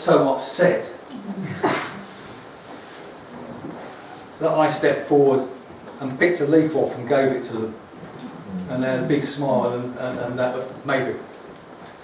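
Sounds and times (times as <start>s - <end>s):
room noise of seated audience: 0.0s - 12.0s.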